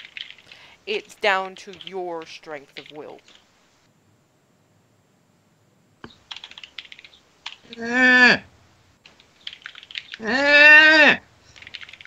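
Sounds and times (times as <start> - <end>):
keyboard typing: 0.0 - 3.4, 6.0 - 7.8, 9.0 - 10.3, 11.5 - 12.0.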